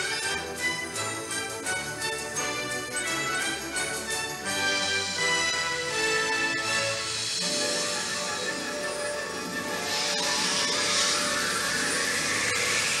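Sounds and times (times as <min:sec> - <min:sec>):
orchestral trailer music: 0:00.0 - 0:13.0
whooshing rush: 0:07.1 - 0:13.0.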